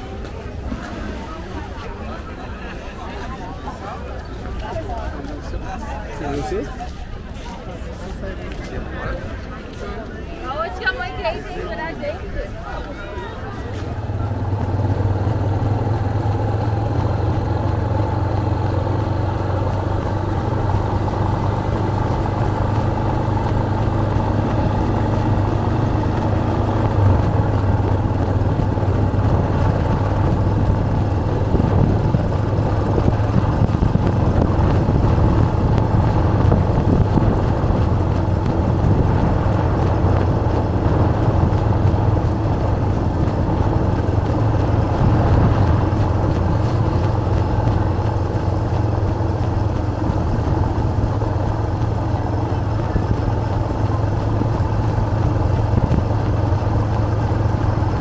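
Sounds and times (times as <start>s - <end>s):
road noise: 0.0s - 58.0s
vehicle engine drone: 13.2s - 58.0s.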